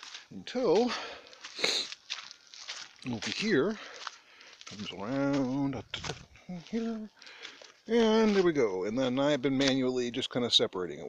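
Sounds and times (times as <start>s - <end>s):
footsteps crunching on gravel: 0.0s - 9.8s.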